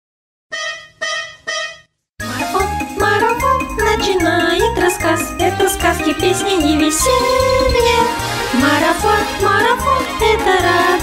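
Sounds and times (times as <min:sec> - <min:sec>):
short tooting notes: 0:00.5 - 0:02.0
cheerful musical intro: 0:00.6 - 0:11.0.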